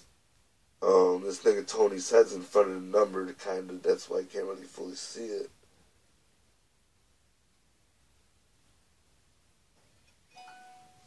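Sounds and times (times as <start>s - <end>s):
electronic chime: 10.3s - 11.0s.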